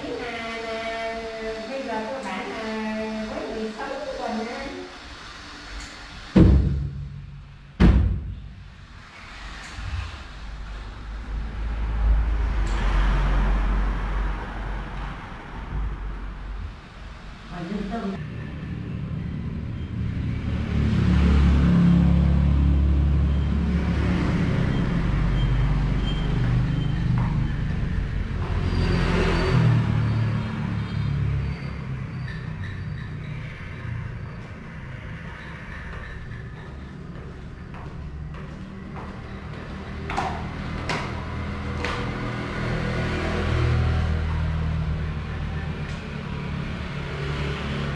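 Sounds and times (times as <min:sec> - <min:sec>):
vehicle passing by: 0:08.6 - 0:47.9.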